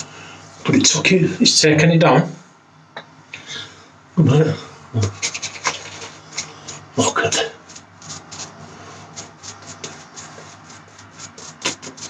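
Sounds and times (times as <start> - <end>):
razor scraping stubble: 5.0 - 12.0.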